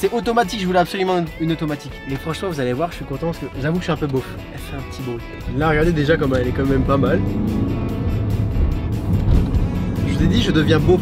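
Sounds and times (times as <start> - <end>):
background music: 0.0 - 11.0
car engine and road rumble: 2.1 - 11.0.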